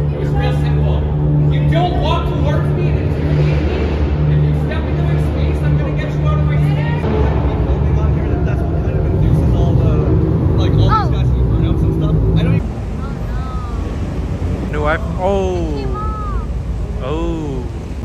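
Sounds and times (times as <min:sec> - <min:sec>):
people talking: 0:11.8 - 0:13.9, 0:14.7 - 0:17.8.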